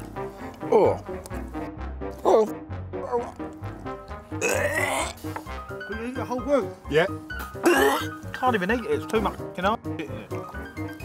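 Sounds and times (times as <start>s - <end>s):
background music: 0.0s - 11.0s
man grunting and gagging: 4.4s - 5.2s, 7.6s - 8.1s.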